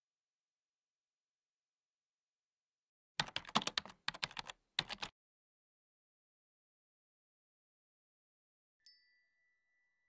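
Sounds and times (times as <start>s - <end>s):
keyboard typing: 3.2s - 5.1s.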